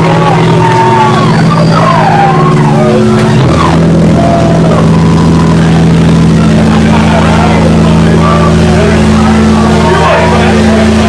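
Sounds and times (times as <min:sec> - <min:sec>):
distorted amplifier drone: 0:00.0 - 0:11.0
voices: 0:00.0 - 0:11.0.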